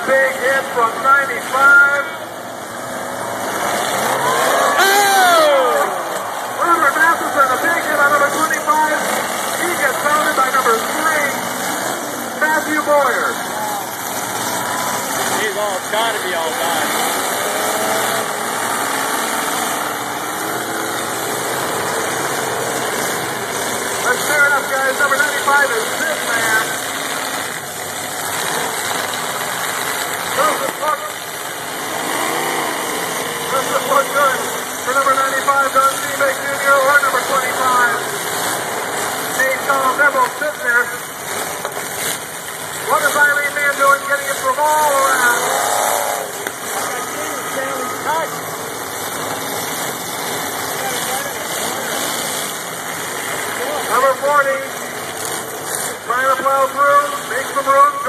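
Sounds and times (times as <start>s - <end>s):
voices: 0.0s - 23.2s, 23.8s - 28.4s, 29.2s - 31.8s, 33.1s - 58.0s
car engines revving: 0.0s - 58.0s.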